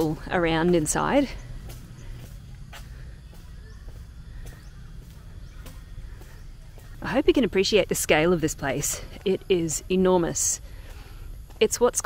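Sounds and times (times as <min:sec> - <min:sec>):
faint bird chirps: 0:00.0 - 0:11.3
steady low rumble: 0:00.0 - 0:11.7.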